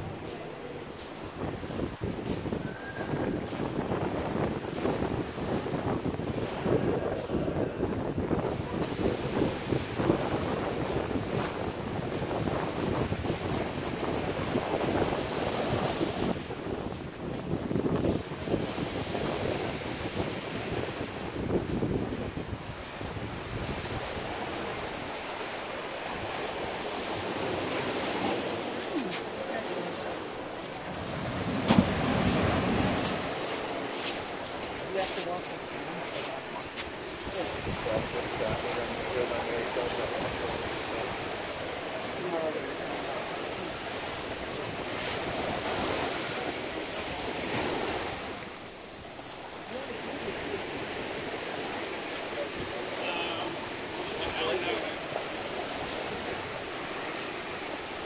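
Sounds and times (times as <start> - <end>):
wind buffeting microphone: 0.0 - 52.9
ocean surf on a beach: 0.0 - 58.0.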